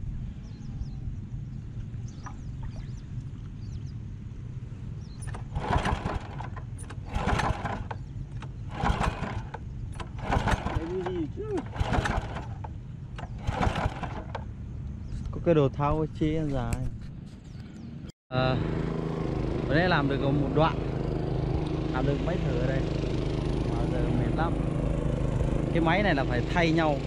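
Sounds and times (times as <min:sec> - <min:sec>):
small tiller engine running: 0:05.2 - 0:14.6, 0:18.4 - 0:27.0.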